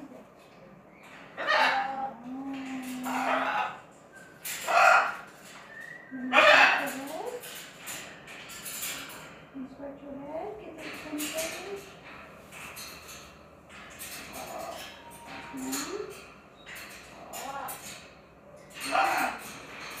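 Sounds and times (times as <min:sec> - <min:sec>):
parrot speech-like chatter: 0:01.4 - 0:03.8, 0:04.6 - 0:05.2, 0:06.1 - 0:07.4, 0:14.2 - 0:16.2, 0:17.1 - 0:17.9, 0:18.8 - 0:19.5.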